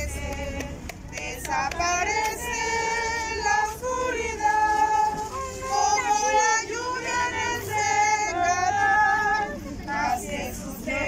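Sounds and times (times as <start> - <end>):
women singing a hymn: 0.0 - 11.0.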